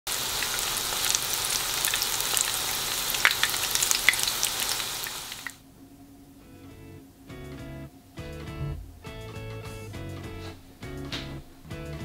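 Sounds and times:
food deep-frying in oil: 0.1 - 5.6
oil popping and crackling: 0.1 - 5.6.

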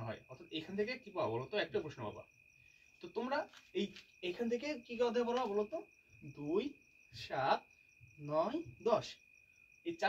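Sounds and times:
man speaking: 0.0 - 2.2, 3.0 - 7.6, 8.2 - 9.2
crickets trilling: 0.0 - 10.0.

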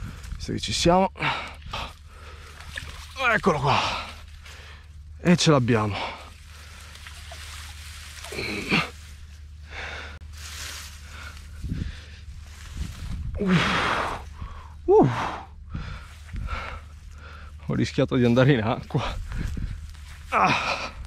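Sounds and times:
grass rustling: 1.3 - 14.9, 15.6 - 21.0
man grunting: 8.3 - 9.0, 14.9 - 15.4, 20.3 - 21.0
man gasping for breath: 9.6 - 10.2, 13.4 - 17.6.

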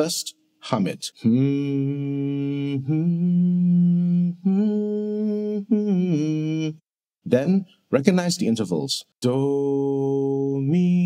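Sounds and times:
man humming a melody: 1.2 - 6.9.

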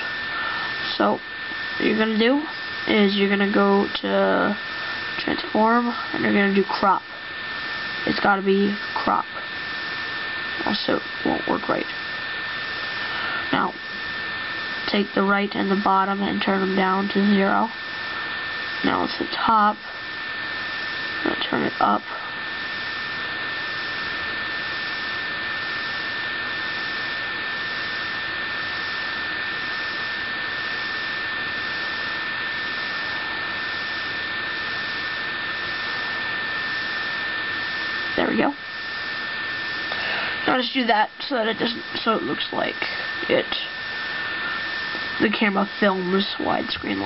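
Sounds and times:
high-pitched whine: 0.0 - 47.0
steady hiss: 0.0 - 47.0.

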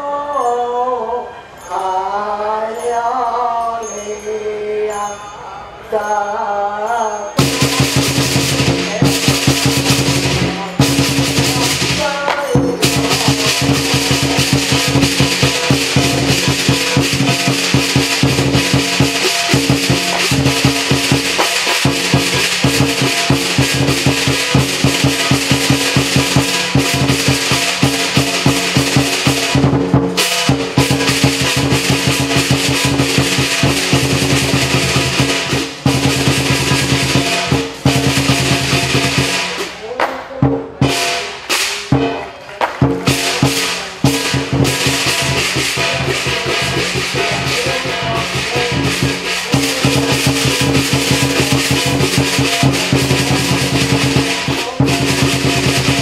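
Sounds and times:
ringing gong: 7.1 - 39.6, 43.0 - 56.0
crashing cymbals: 7.2 - 56.0
large drum beaten fast: 7.4 - 56.0.

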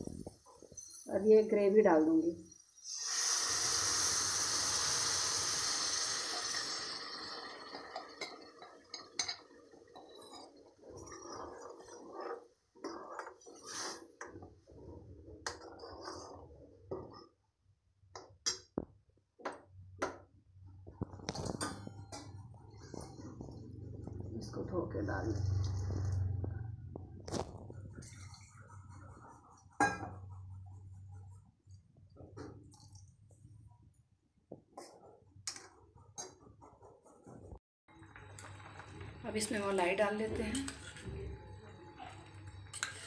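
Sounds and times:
paste sizzling in hot oil: 2.7 - 14.2
spoon scraping metal pan: 7.6 - 17.4, 42.7 - 43.0.

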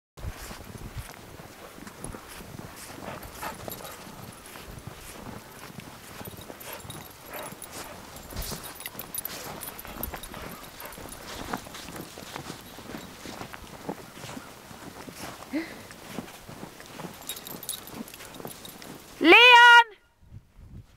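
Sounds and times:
footsteps crunching through snow: 0.2 - 19.2.

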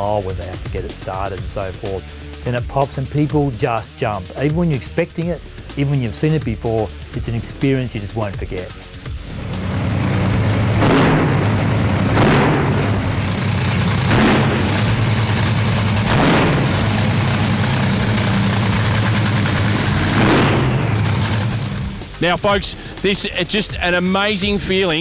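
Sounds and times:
dragster engine throttle blips: 9.1 - 22.2.

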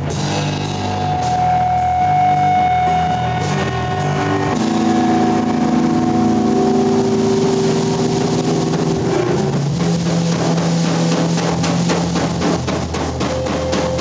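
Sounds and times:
electric guitar chords ringing: 0.0 - 11.9
drum hits: 0.0 - 14.0.

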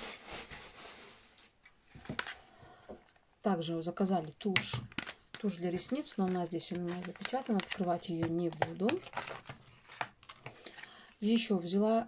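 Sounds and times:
packaging rustle: 4.9 - 11.0.

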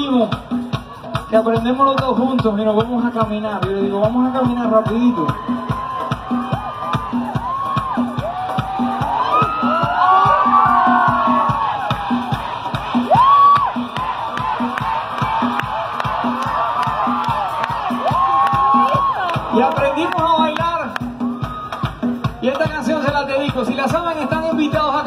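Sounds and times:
live band music with fast beat: 0.0 - 25.0
audience whooping and shouting: 4.8 - 22.1.

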